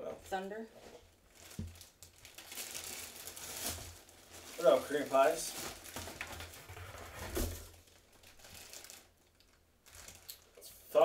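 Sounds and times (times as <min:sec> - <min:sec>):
plastic bag crinkling: 0:01.2 - 0:10.6.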